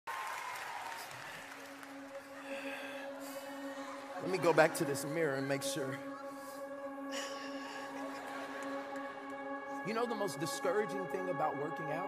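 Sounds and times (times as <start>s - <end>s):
audience applause: 0.0s - 6.0s.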